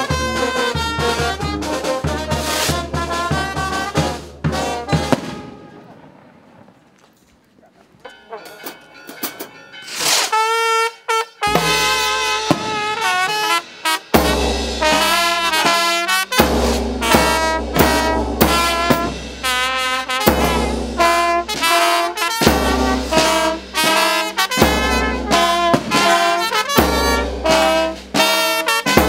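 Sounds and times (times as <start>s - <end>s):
bass drum beating: 0.0s - 5.5s, 11.5s - 28.2s
held brass note: 0.0s - 6.0s, 8.1s - 29.0s
brass band playing: 0.0s - 6.1s, 9.4s - 29.0s
cymbal clash: 11.4s - 21.4s.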